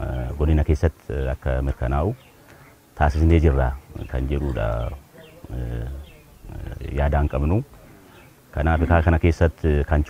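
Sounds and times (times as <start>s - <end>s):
man speaking: 0.0s - 2.2s, 3.0s - 10.0s.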